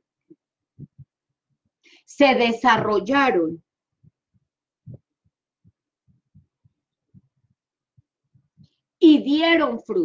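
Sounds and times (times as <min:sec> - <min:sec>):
faint low thumps: 0:00.3 - 0:01.3, 0:03.9 - 0:08.8.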